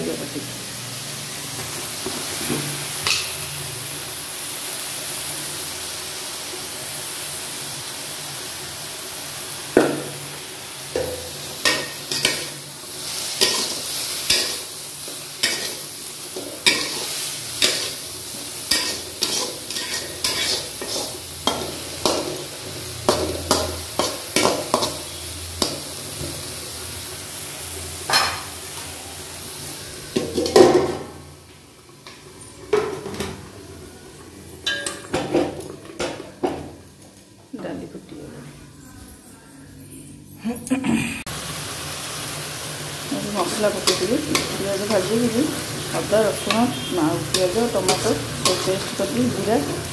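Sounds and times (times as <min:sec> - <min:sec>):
food sizzling in hot oil: 0:00.0 - 0:35.6, 0:41.3 - 0:49.9
spatula scraping a pan: 0:13.3 - 0:14.7, 0:18.7 - 0:21.2.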